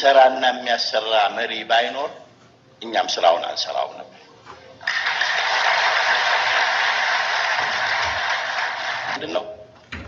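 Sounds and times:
large audience applauding: 4.9s - 9.2s.

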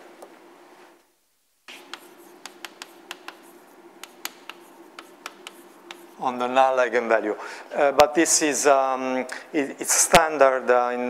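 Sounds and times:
faint room hum: 0.0s - 11.0s
chalk tapping and scratching: 1.7s - 6.2s.

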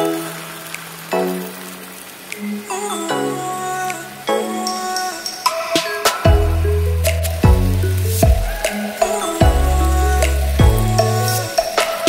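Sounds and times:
background music with drum hits: 5.2s - 12.0s.

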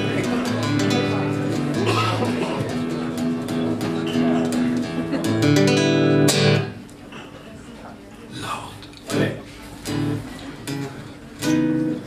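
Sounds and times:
acoustic guitar picking: 0.0s - 6.9s, 9.0s - 12.0s.

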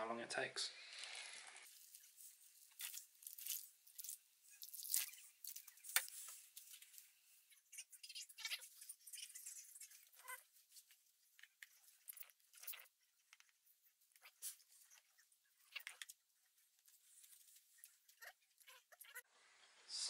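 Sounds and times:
coir brick crackling soaking water: 0.8s - 7.1s.

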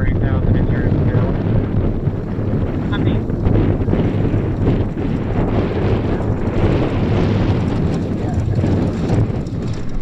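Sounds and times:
radial engine rumbling: 0.0s - 10.0s
wind buffeting microphone: 0.0s - 10.0s
faint voices: 8.0s - 9.1s.

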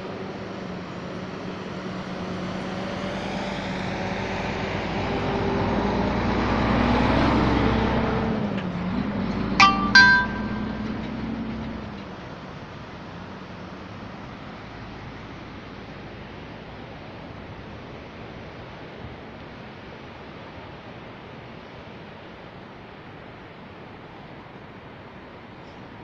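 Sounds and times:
motor vehicle passing: 2.2s - 9.6s.

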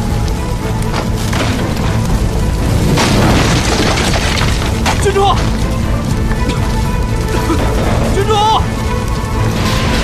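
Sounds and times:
film score music: 0.0s - 10.0s
fire rumbling: 0.0s - 10.0s
wood cracking and splintering: 0.0s - 10.0s.

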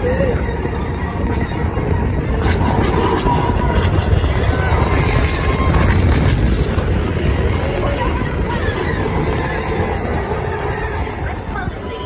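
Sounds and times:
coaster train rumbling on track: 0.0s - 12.0s.

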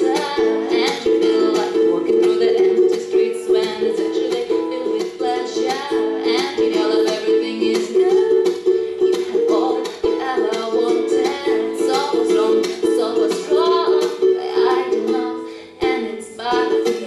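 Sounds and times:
ukulele strumming chords: 0.0s - 17.0s.

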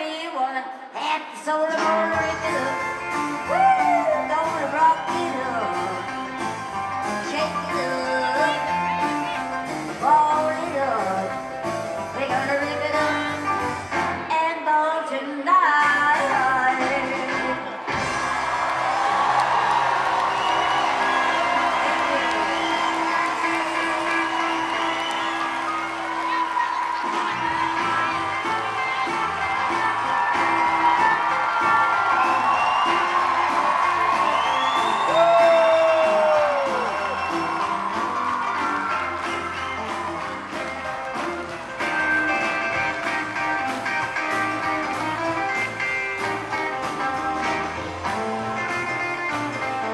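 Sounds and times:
live rock and roll band: 0.0s - 49.9s
crowd cheering and whooping: 3.3s - 7.0s, 17.8s - 48.9s.

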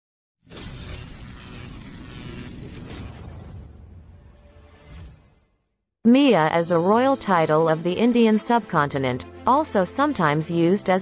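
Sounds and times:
dense crashing noise: 0.5s - 5.1s.

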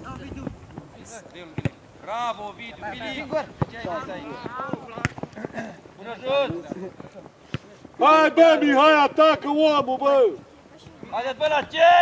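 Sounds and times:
voices calling out: 0.0s - 12.0s
football kicked: 1.5s - 1.8s, 3.4s - 5.4s.

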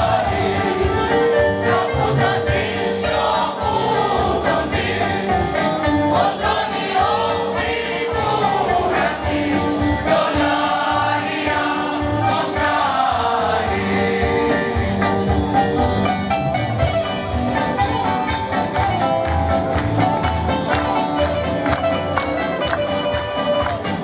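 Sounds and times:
mixed choir singing: 0.0s - 15.2s.

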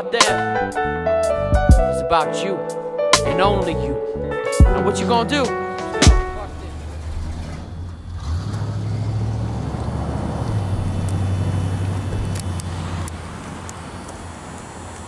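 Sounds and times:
truck engine rumbling: 3.2s - 15.0s.

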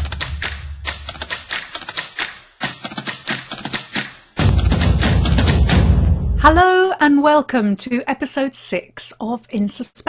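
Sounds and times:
typewriter keys clacking: 0.0s - 4.2s.

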